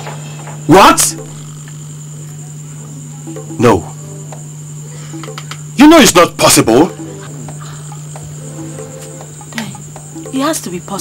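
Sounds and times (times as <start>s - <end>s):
crickets trilling: 0.0s - 11.0s
low steady hum: 0.0s - 11.0s.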